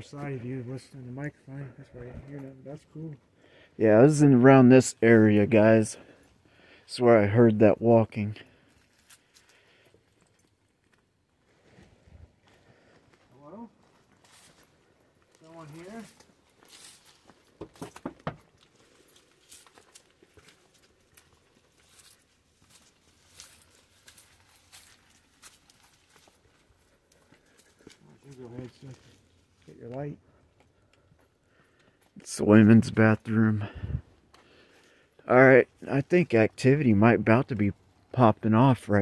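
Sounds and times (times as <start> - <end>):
footsteps on gravel path: 8.4 - 32.2.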